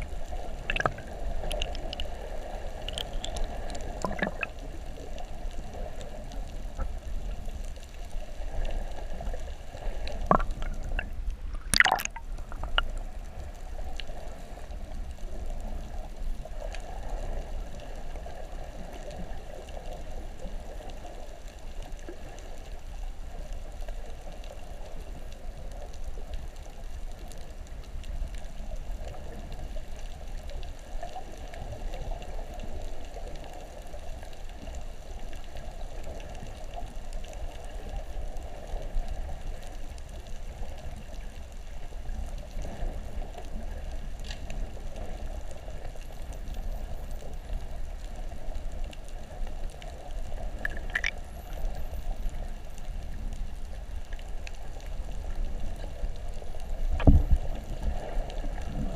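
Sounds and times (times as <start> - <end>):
muffled underwater water noise: 0.0 - 58.9.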